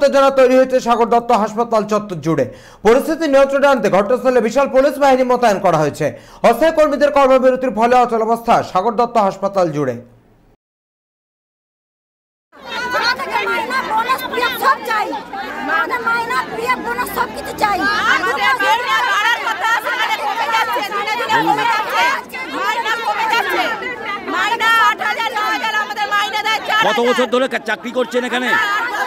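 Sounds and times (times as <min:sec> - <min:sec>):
crowd of women shouting: 0:12.6 - 0:29.0.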